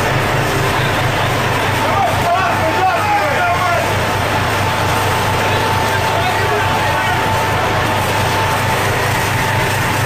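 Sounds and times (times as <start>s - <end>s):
boat machinery drone: 0.0s - 10.0s
high whine: 0.0s - 10.0s
voices: 0.0s - 10.0s.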